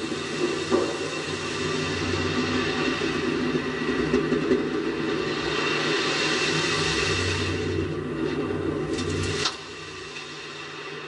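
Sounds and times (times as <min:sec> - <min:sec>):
rushing rumbling noise: 0:00.0 - 0:11.0.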